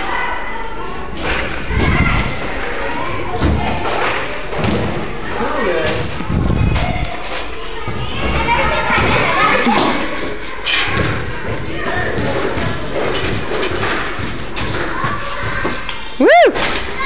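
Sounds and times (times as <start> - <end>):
children's voices: 0.0 - 3.9, 6.5 - 12.1, 14.8 - 17.0.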